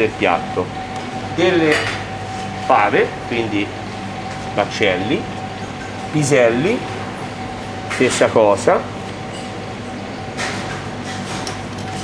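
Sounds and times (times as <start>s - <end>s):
kitchen machinery hum: 0.0s - 12.0s.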